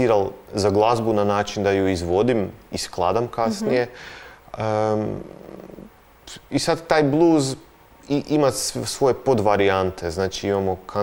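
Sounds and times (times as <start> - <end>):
man's drawn-out hesitation sound: 3.3 - 4.0.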